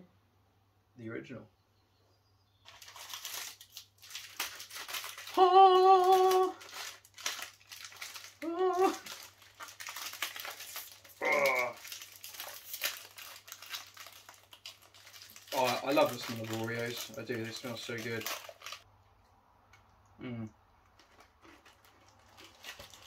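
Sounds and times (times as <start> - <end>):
plastic wrapper crinkling and tearing: 2.6 - 18.9, 20.8 - 23.0
person's voice holding a note: 5.3 - 6.6.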